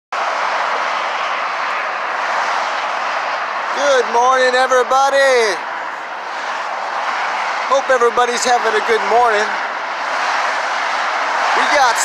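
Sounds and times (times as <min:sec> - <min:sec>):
heavy freeway traffic rushing: 0:00.1 - 0:12.0.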